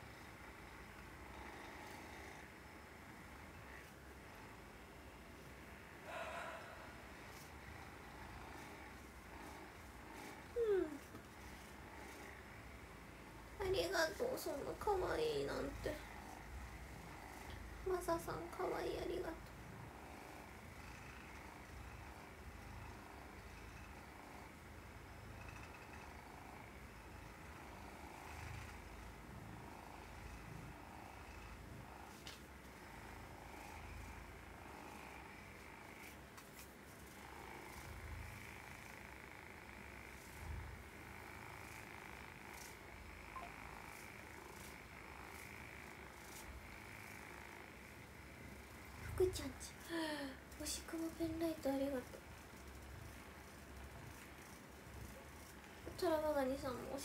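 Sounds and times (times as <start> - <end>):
massage gun buzzing: 0.0 - 5.9, 6.7 - 57.0.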